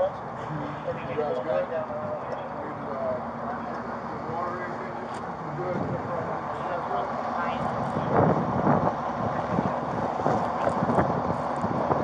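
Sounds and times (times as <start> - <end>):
indistinct voices: 0.0 - 11.6
wind on microphone: 7.4 - 12.0.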